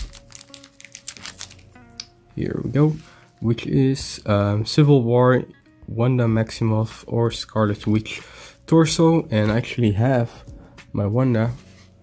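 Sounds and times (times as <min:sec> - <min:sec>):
plastic bag crinkling: 0:00.0 - 0:01.7
faint background music: 0:00.0 - 0:12.0.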